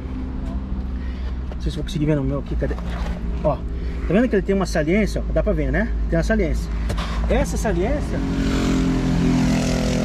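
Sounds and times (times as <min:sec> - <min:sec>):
engine droning hum: 0:00.0 - 0:10.0.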